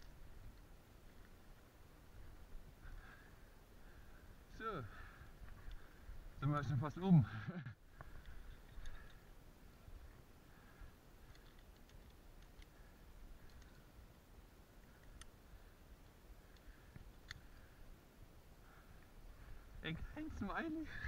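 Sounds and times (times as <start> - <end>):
climbing gear clicks: 8.0 - 9.2, 11.2 - 17.8.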